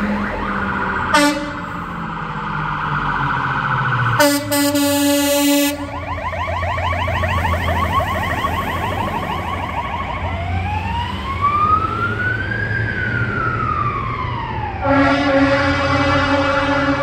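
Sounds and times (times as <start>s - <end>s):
fire engine siren yelp and wail: 0.0s - 17.0s.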